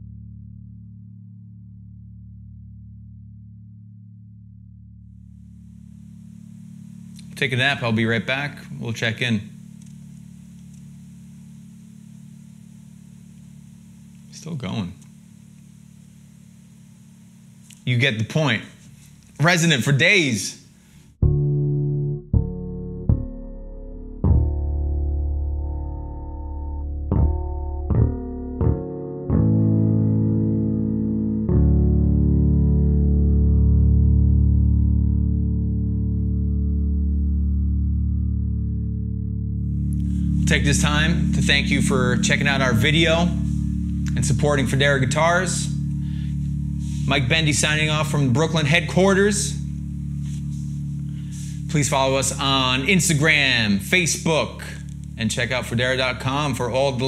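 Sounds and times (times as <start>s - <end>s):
electric bass note ringing: 0.0s - 14.4s, 21.2s - 57.0s.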